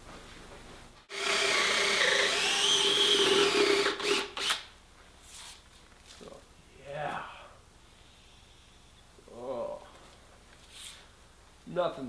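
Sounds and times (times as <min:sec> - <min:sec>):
cordless drill boring into wood: 0:01.1 - 0:04.6.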